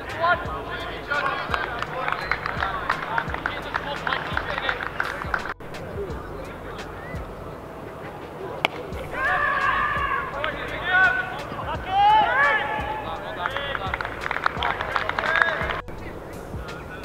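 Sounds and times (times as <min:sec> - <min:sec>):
players shouting: 0:00.0 - 0:17.0
short claps: 0:01.2 - 0:05.6, 0:13.4 - 0:15.8.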